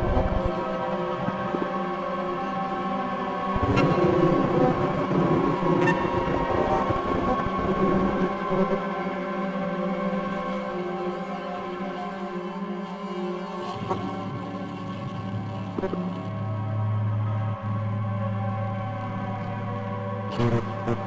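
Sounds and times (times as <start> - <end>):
low rumbling layer: 0.0 - 0.6
electric guitar drone: 0.0 - 11.6, 12.6 - 21.0.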